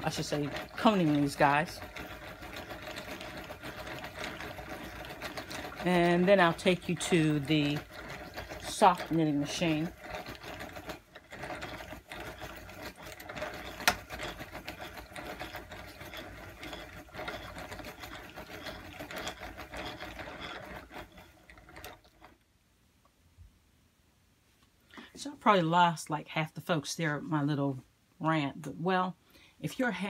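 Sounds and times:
yarn winder whirring and clicking: 0.0 - 22.5, 28.2 - 30.0.

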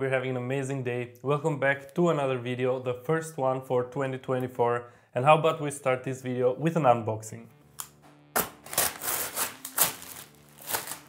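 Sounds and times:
paper bag crinkling: 8.4 - 11.0
plastic wrapping crackling: 8.4 - 11.0.

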